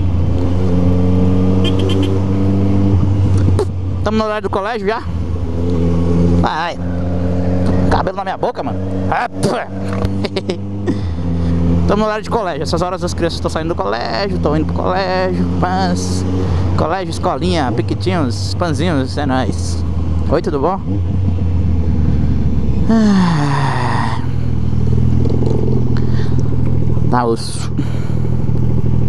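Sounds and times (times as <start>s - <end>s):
motorcycle engine without silencer: 0.0s - 23.2s, 23.8s - 29.0s.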